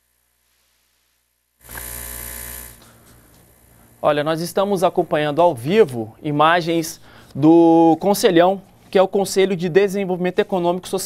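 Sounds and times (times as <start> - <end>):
electrical buzz and hiss: 0.0 - 6.2.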